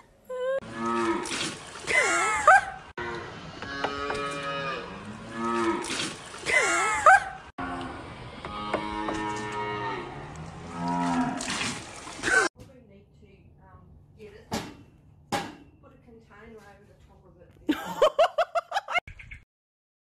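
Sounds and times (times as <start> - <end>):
calf mooing: 3.0 - 5.8, 7.6 - 11.4.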